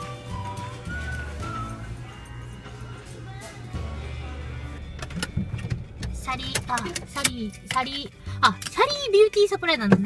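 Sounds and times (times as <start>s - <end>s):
low motor rumble: 0.0s - 8.4s
music: 0.0s - 10.0s.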